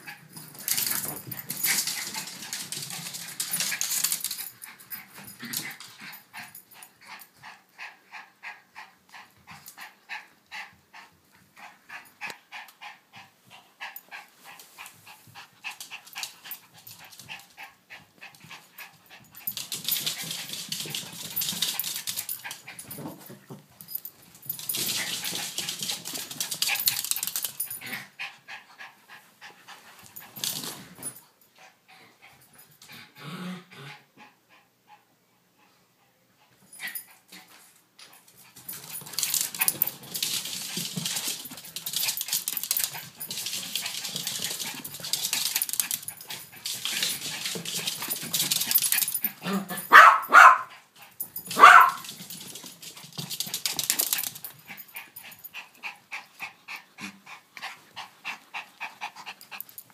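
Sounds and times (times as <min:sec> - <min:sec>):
dogs play-fighting noises: 0:00.0 - 0:59.9.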